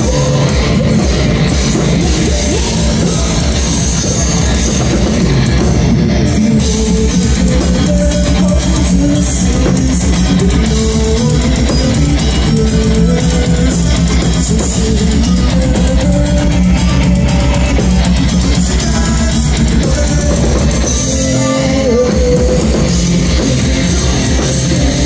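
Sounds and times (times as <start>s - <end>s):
bass guitar: 0.0s - 25.0s
drum kit: 0.0s - 25.0s
electric guitar: 0.0s - 25.0s.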